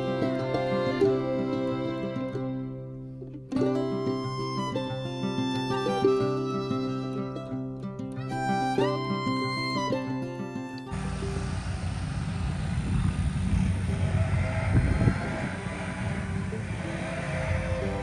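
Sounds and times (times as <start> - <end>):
background string music: 0.0 - 12.3, 14.0 - 18.0
wind buffeting microphone: 11.0 - 18.0.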